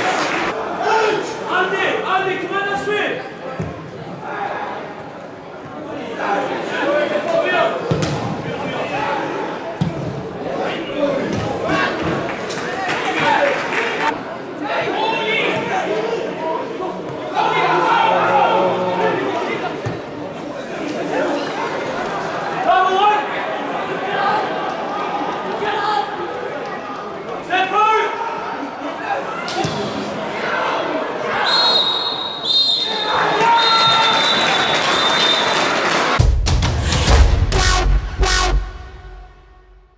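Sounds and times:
stadium crowd noise: 0.0 - 39.9
music with heavy bass drum: 36.2 - 39.8.

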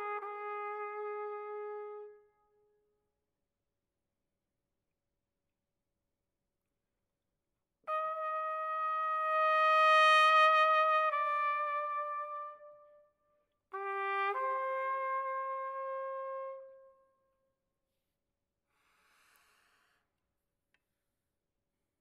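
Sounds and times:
solo trumpet in large hall: 0.0 - 3.0, 7.8 - 17.4.

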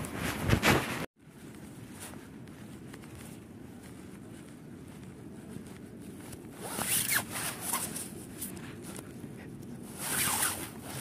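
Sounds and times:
rasping swish: 9.9 - 11.0.

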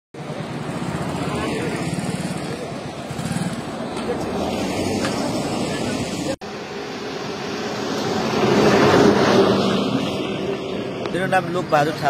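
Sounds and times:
road traffic: 0.1 - 12.0
motorcycle engines: 0.2 - 12.0.

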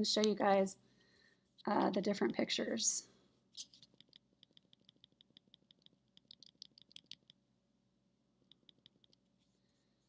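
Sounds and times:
mouse scroll wheel ticking: 3.6 - 7.4, 8.4 - 9.3.

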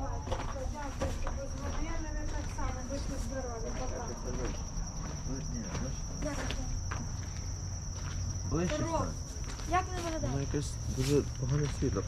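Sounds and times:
insects high-pitched drone: 0.0 - 12.0.

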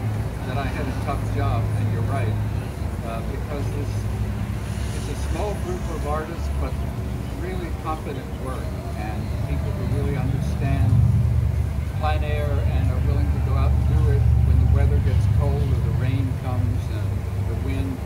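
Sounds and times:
low steady rumble: 0.0 - 18.0.

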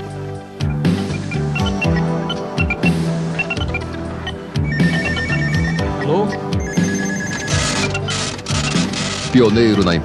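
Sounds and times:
background music with a beat: 0.0 - 10.0
electronic telephone ringing: 0.7 - 9.4.

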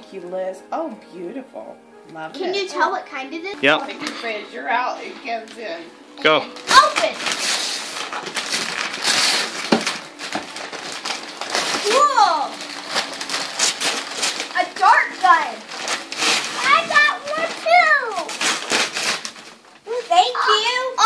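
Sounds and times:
wrapping paper tearing and rustling: 6.3 - 21.0.

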